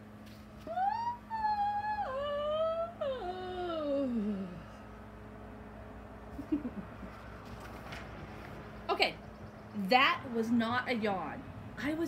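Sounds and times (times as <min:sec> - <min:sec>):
woman yawning: 0:00.7 - 0:04.8.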